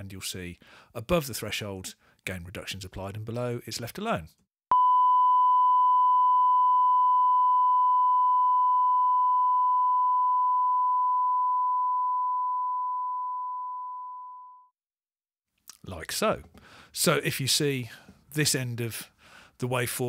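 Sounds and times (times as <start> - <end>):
pure test tone: 4.7 - 14.7
faint higher overtone: 4.7 - 14.8.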